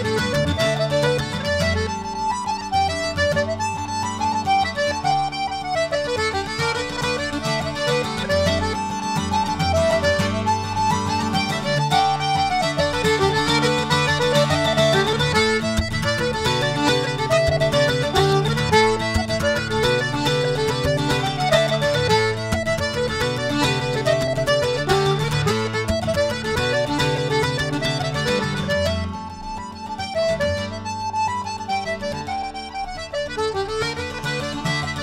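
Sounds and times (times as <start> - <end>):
accordion: 0.0 - 35.0
fiddle: 0.0 - 35.0.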